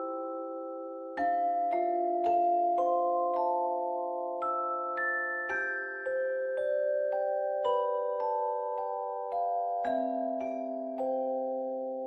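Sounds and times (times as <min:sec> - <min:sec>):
soft lullaby with bell-like notes: 0:00.0 - 0:12.0.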